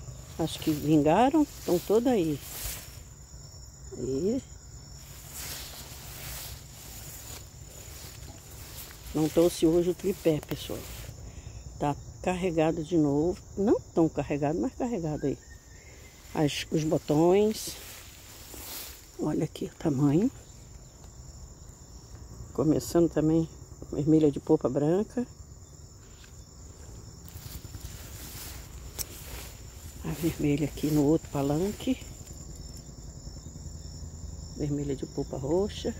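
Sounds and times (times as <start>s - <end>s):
footsteps swishing through tall grass: 0.0s - 3.5s, 4.1s - 11.2s, 16.0s - 20.3s, 26.2s - 32.5s
faint high insect tone: 0.0s - 35.9s
high-pitched cricket trill: 0.0s - 35.9s.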